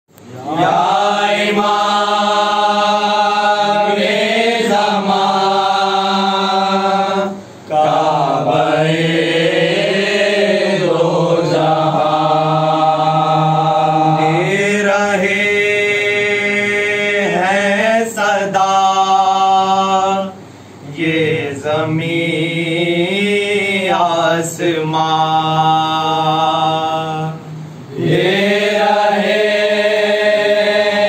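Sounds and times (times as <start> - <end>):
men chanting in unison: 0.4 - 31.0.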